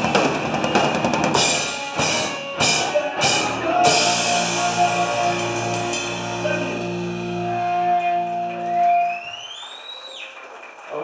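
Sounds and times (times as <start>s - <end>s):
band playing held chord: 0.0s - 9.2s
guitar feedback whine: 0.0s - 9.4s.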